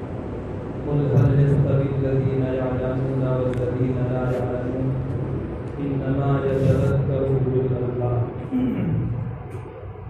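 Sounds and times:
man chanting religious recitation: 0:00.8 - 0:05.1, 0:05.8 - 0:09.1.

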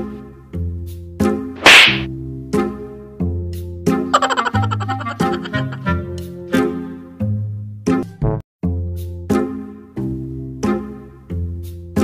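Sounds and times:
background music: 0:00.0 - 0:12.0
whip-like hit sound effect: 0:01.6 - 0:02.1.

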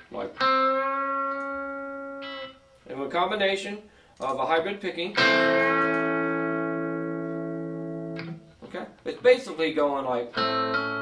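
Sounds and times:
electric guitar chord ringing: 0:00.3 - 0:02.7, 0:05.2 - 0:08.4, 0:10.4 - 0:11.0.

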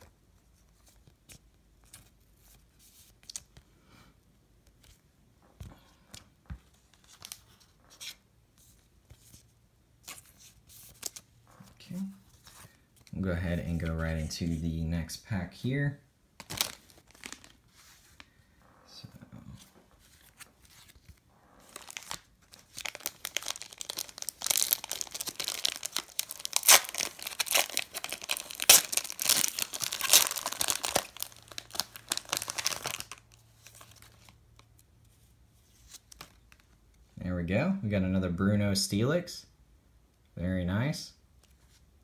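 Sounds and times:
foil wrapper tearing and crinkling: 0:21.8 - 0:33.3.

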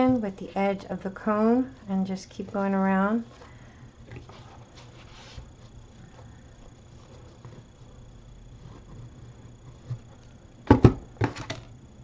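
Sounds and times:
paper napkin rustling: 0:04.2 - 0:10.1.

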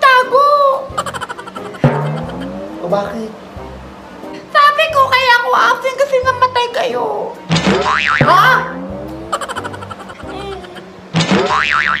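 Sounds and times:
wobbling cartoon tone: 0:01.0 - 0:03.2, 0:07.8 - 0:10.9
faint voice: 0:10.2 - 0:10.9.

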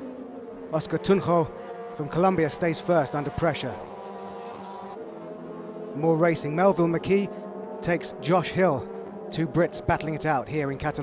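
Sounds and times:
race car engines at high revs: 0:00.0 - 0:11.0.

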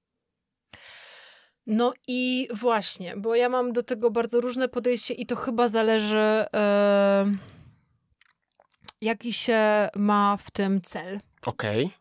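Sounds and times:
woman speaking: 0:01.7 - 0:07.4, 0:08.9 - 0:11.2.

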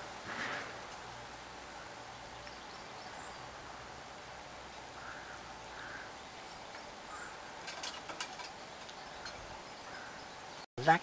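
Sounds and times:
distant bird calls: 0:00.0 - 0:10.7
faint outdoor hiss: 0:00.0 - 0:11.0.

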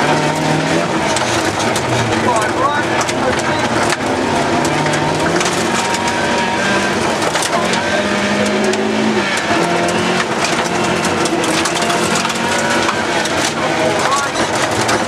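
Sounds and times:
rally car engine revving: 0:00.0 - 0:15.0
gravel rattling against underbody: 0:00.1 - 0:15.0.

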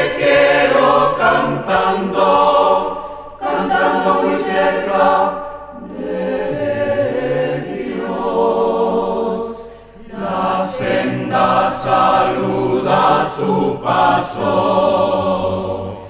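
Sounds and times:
choir singing held chords: 0:00.0 - 0:16.0.

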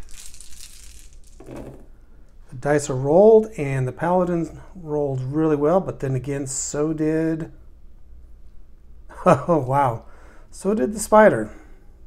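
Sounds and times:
dice clattering on paper: 0:00.0 - 0:01.7.

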